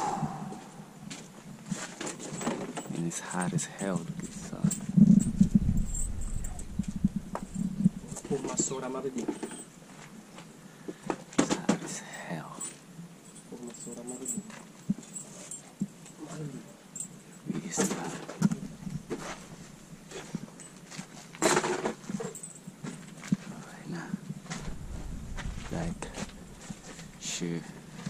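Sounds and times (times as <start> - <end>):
indistinct voices talking: 24.6 - 27.7.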